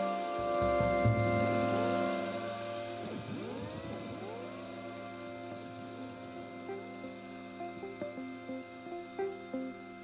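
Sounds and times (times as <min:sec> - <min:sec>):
swooping pitch glides: 0:00.0 - 0:09.9
electric guitar looped tones: 0:00.0 - 0:10.0.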